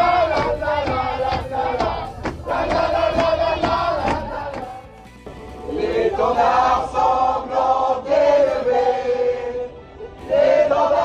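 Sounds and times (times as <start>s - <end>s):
regular beat: 0.0s - 4.9s
crowd singing and shouting: 0.0s - 11.0s.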